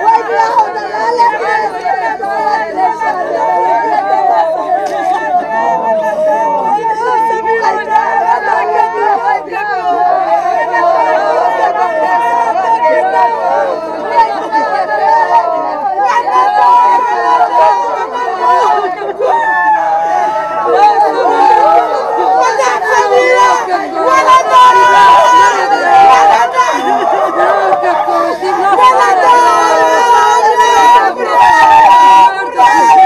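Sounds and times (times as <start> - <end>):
women wailing lament: 0.0 - 33.0.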